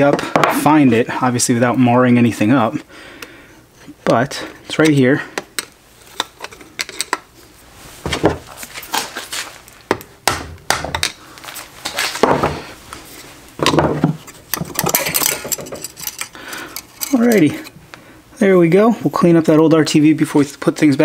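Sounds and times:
metal tool scraping: 0:14.2 - 0:17.8
metal tool clicking and clinking: 0:14.5 - 0:17.7.

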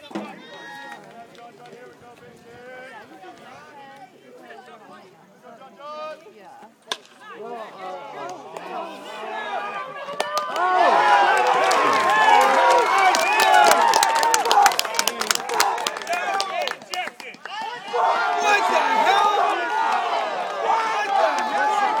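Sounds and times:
crowd yelling and cheering: 0:07.4 - 0:22.0
sharp claps: 0:10.1 - 0:10.7, 0:11.3 - 0:17.7.

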